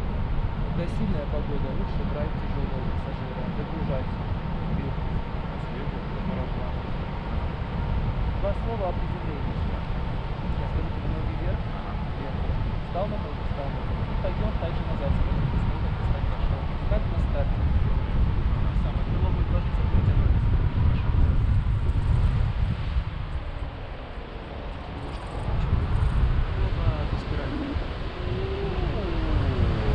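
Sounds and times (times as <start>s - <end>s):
wind buffeting microphone: 0.0s - 29.9s.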